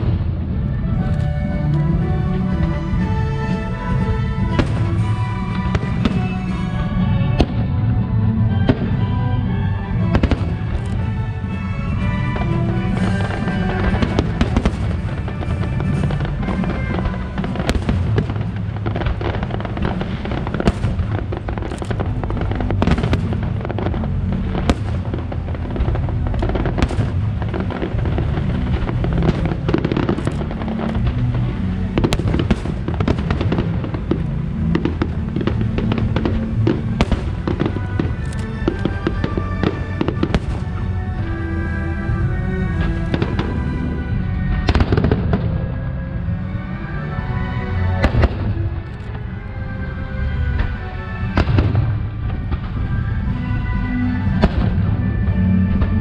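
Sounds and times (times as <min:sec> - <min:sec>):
fireworks bursts and crackles: 0:00.0 - 0:56.0
low rumble: 0:00.0 - 0:56.0
music playing: 0:00.0 - 0:56.0.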